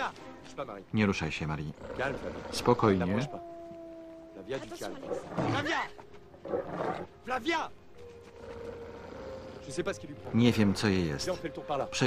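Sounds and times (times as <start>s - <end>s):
dog snarling and growling: 1.7s - 3.3s, 8.3s - 9.8s.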